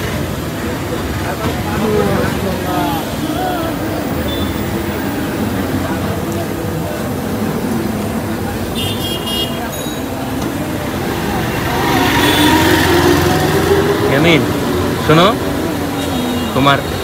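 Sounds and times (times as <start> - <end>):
traffic: 0.0 - 17.0.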